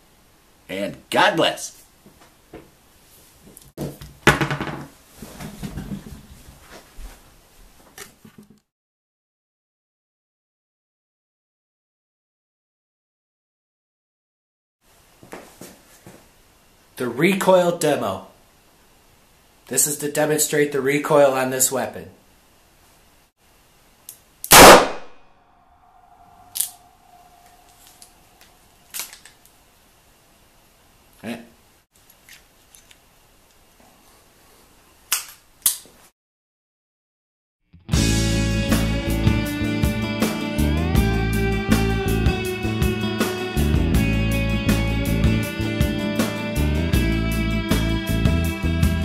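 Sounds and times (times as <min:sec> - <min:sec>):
revolver knocking on tabletop: 0:04.3 - 0:04.9
revolver gunshot: 0:24.5 - 0:25.2.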